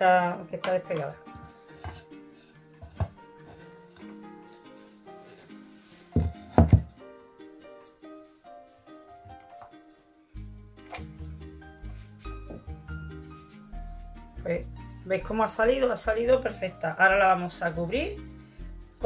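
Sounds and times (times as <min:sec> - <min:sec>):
background music: 0:00.0 - 0:19.0
plastic mould knocking on slate: 0:02.8 - 0:03.2, 0:06.2 - 0:07.0.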